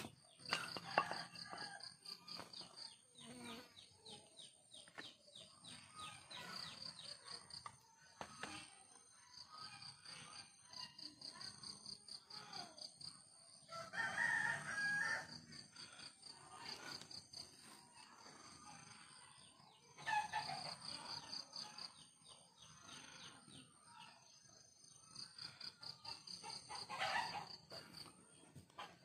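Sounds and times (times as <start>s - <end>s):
rooster crowing: 13.7s - 15.5s.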